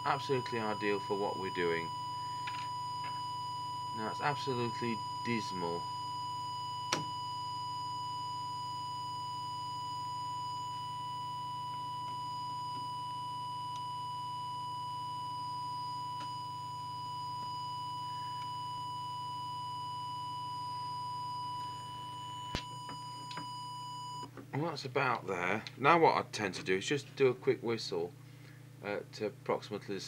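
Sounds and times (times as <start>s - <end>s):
sine test tone: 0.0s - 24.3s
low hum: 0.0s - 25.8s.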